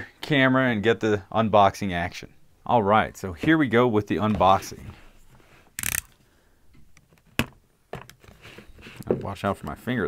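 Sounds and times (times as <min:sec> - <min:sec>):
cardboard lid scraping: 0:08.2 - 0:09.4.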